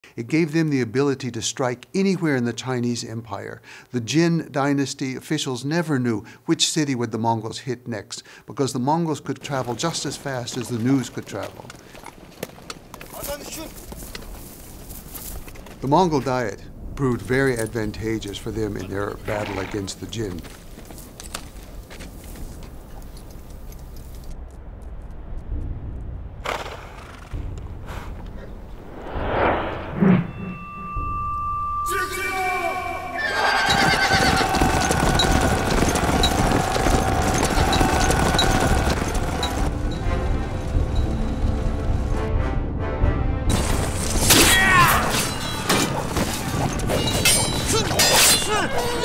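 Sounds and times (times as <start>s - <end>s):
horse hooves clopping: 9.4s - 16.4s, 17.6s - 28.4s, 33.2s - 42.1s
short call: 31.7s - 33.7s
men shouting: 31.9s - 39.5s, 47.8s - 49.0s
horse neighing: 33.2s - 39.7s.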